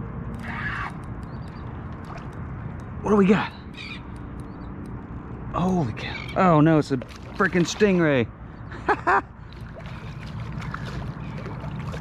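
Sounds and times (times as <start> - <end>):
wind: 0.0 - 12.0
water noise: 0.4 - 3.6, 5.5 - 12.0.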